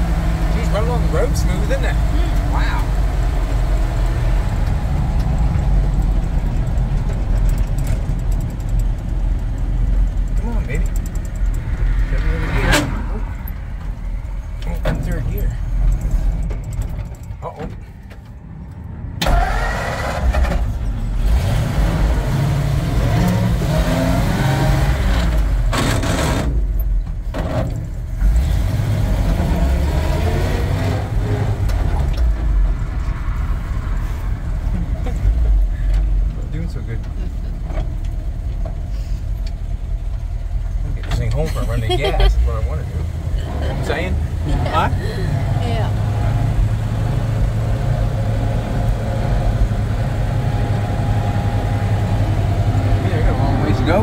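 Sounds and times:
road noise: 0.0 - 54.0
truck engine rumble from inside cab: 0.0 - 54.0.

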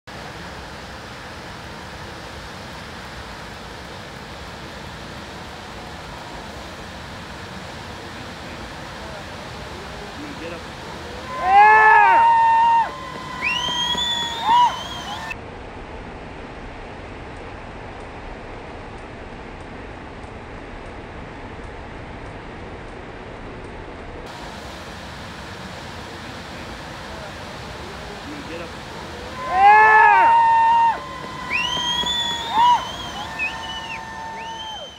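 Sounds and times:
waterfall rushing: 0.1 - 15.4, 24.3 - 34.9
onlookers whooping and shouting: 11.1 - 15.4, 29.0 - 34.9.

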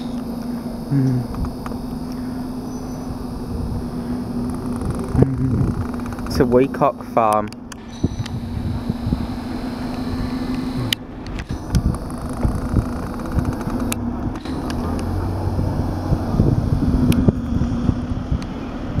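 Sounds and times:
vehicle engines idling and moving: 0.0 - 19.0
wind rumbling on microphone: 2.4 - 6.7, 7.7 - 19.0.

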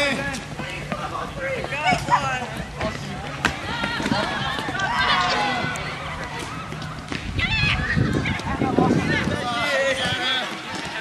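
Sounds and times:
children shouting: 3.4 - 11.0.

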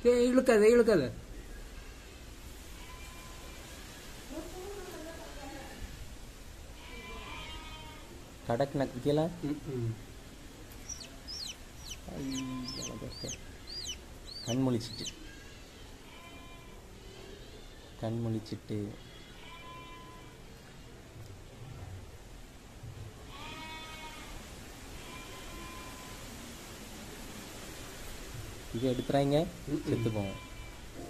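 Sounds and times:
chick peeping: 10.7 - 15.2
drawn-out animal call: 10.8 - 15.1.

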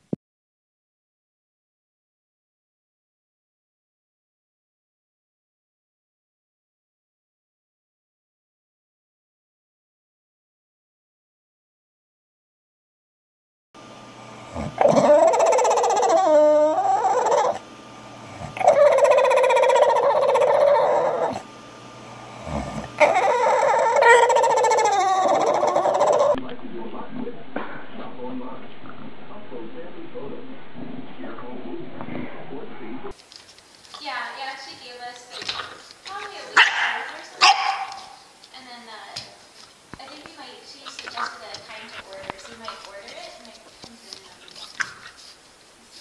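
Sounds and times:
dog whine-howling: 14.6 - 17.6, 18.4 - 21.5, 22.4 - 26.4
puppy barking: 14.8 - 17.6, 18.6 - 21.4, 22.5 - 26.4, 36.5 - 38.3.

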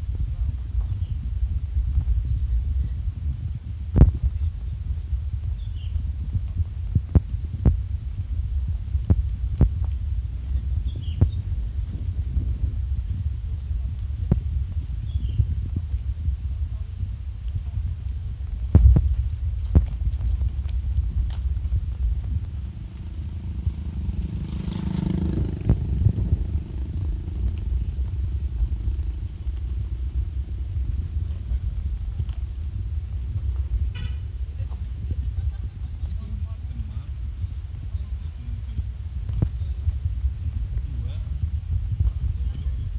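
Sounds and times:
car cabin rumble on gravel: 0.0 - 24.2, 24.8 - 42.9
passing vehicle engine: 20.7 - 34.4.

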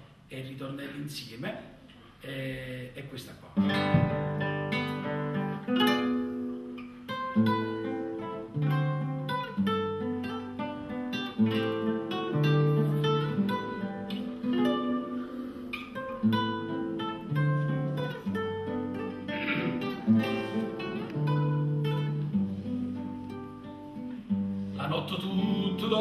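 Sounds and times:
classical guitar playing chords: 3.6 - 26.0
man singing: 24.8 - 26.0.

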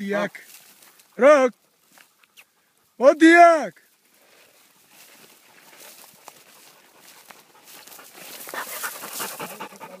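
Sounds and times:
dog panting fast: 5.7 - 10.0.

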